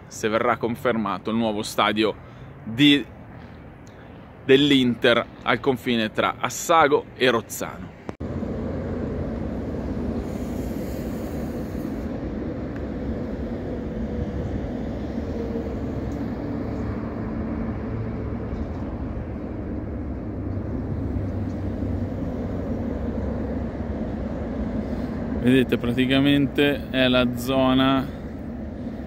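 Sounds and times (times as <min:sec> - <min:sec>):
lorries passing: 0:00.0 - 0:29.0
road traffic rumble: 0:00.0 - 0:29.0.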